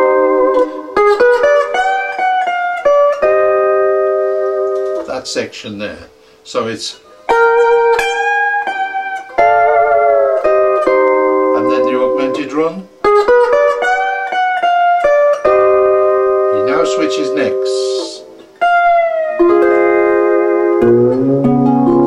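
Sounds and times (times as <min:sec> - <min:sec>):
lap steel guitar: 0:00.0 - 0:22.0.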